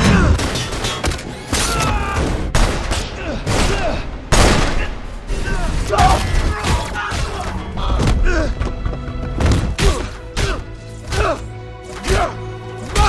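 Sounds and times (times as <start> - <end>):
men grunting and shouting: 3.1 - 8.8, 9.6 - 13.0.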